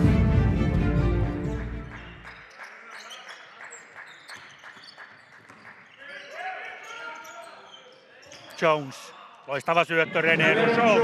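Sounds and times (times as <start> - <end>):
voices in a hall: 1.9 - 11.0.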